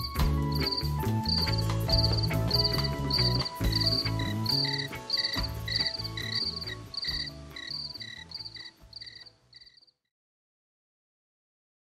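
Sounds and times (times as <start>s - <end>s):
song with bass and chords: 0.0s - 9.0s
cricket chirps: 0.0s - 9.9s.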